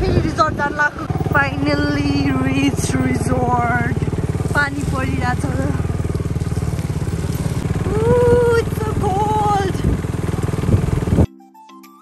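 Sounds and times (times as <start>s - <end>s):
vehicle engine rumbling: 0.0s - 11.3s
soft plucked music: 8.9s - 12.0s.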